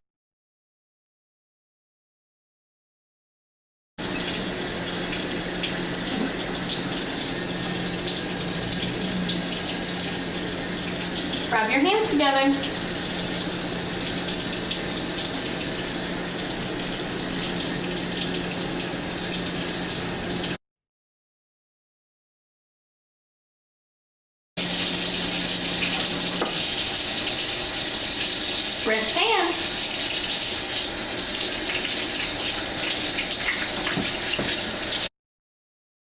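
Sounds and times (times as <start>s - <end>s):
faucet running into sink: 4.0s - 20.6s, 24.6s - 35.1s
person speaking: 11.5s - 12.7s, 28.8s - 29.7s.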